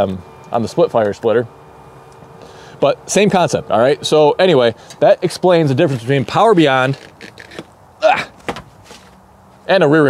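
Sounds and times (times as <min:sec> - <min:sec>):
faint scuffs and ticks: 0:08.8 - 0:09.7.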